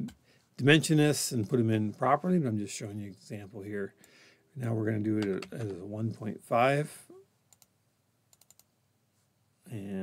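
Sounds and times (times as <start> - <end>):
faint keyboard and mouse clicks: 5.2 - 5.8, 7.5 - 8.7.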